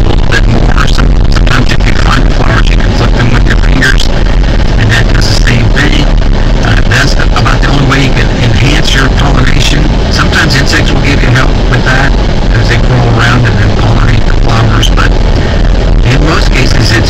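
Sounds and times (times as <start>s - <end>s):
car engine and road noise: 0.0s - 17.0s
muffled voices: 0.0s - 17.0s.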